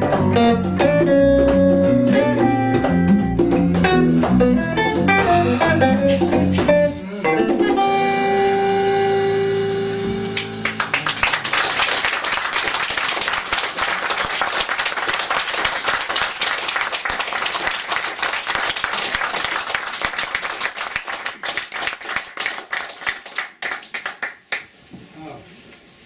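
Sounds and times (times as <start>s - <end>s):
small audience applauding: 10.4s - 24.8s.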